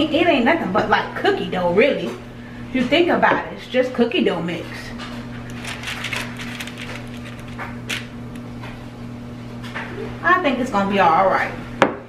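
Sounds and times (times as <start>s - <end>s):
steady low hum: 0.0s - 11.8s.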